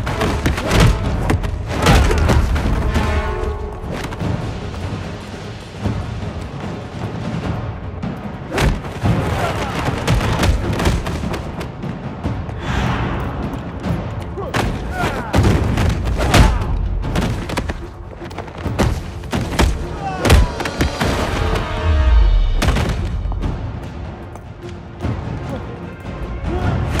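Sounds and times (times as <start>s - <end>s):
action film score music: 0.0s - 27.0s.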